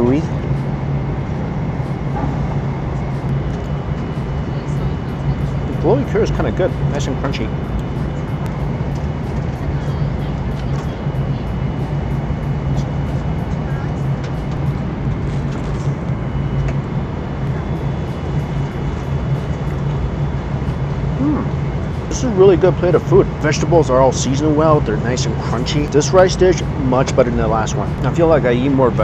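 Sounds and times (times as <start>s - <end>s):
airliner cabin drone: 0.0s - 29.0s.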